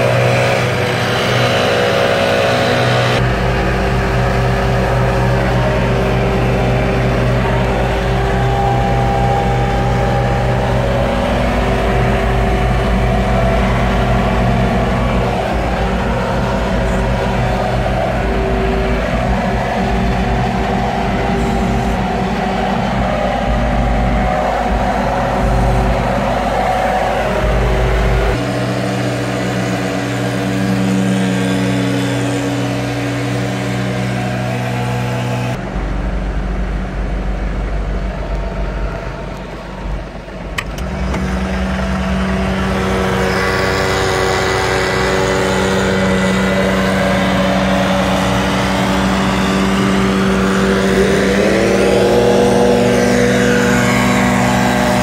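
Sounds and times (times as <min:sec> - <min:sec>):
leaf blowers running: 0:00.0 - 0:38.7, 0:40.2 - 0:55.0
tractor engine running: 0:00.0 - 0:55.0.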